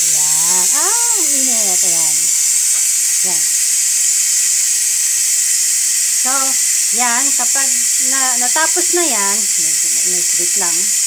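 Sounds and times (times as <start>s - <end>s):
pressure cooker venting steam: 0.0s - 11.0s.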